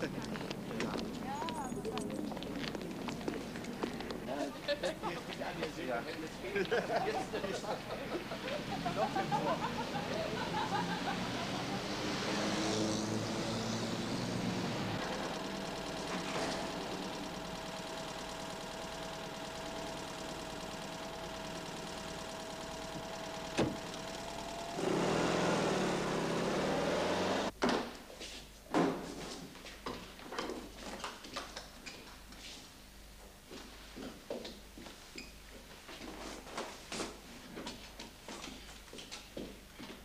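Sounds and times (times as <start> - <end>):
car engine running: 12.8 - 27.5.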